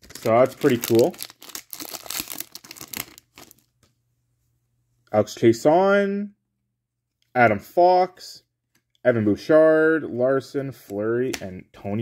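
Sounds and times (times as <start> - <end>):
plastic wrapper crinkling: 0.0 - 3.8.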